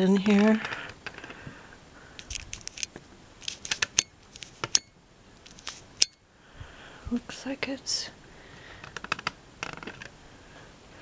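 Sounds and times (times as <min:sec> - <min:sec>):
paper album clicks and crinkles: 0:02.2 - 0:04.7.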